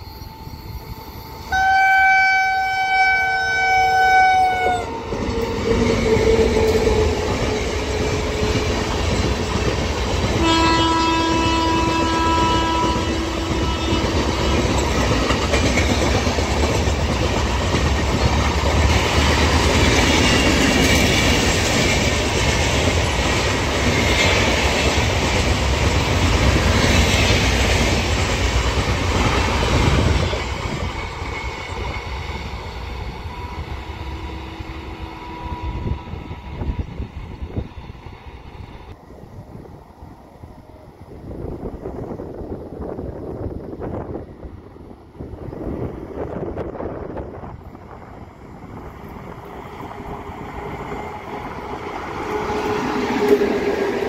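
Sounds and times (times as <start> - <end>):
train coaches rumbling and clattering: 0.0 - 1.8, 2.4 - 54.0
train horn blasts: 0.2 - 5.5, 10.4 - 14.8, 33.2 - 36.7.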